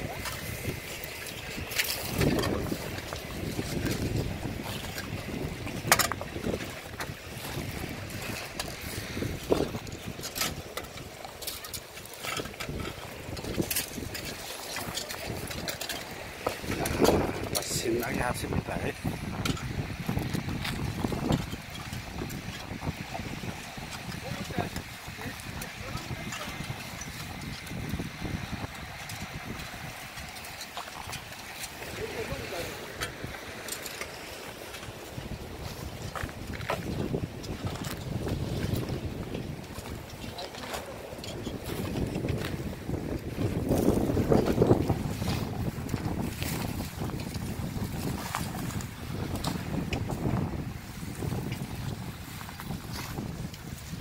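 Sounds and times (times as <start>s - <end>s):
wind rumbling on microphone: 0.0s - 54.0s.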